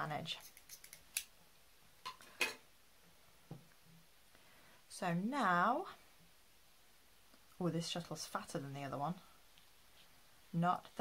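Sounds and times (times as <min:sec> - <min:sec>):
scissors snipping yarn: 0:00.4 - 0:01.3.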